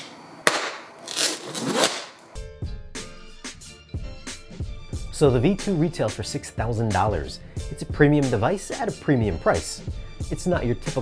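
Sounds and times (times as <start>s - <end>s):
knife scraping through packing tape: 1.0s - 2.3s
guitar background music: 2.4s - 11.0s.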